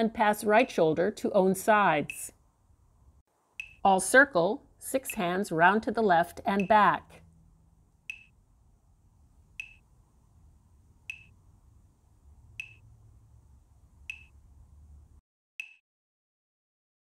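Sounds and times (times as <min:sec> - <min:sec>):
metronome ticks with high ring: 0:03.6 - 0:03.8.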